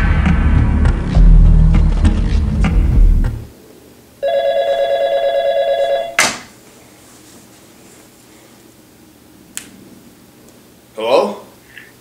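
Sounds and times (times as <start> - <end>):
heavy bass music: 0.0 - 3.5
sharp hit: 0.0 - 3.5
phone ringing with warbling trill: 4.2 - 6.2.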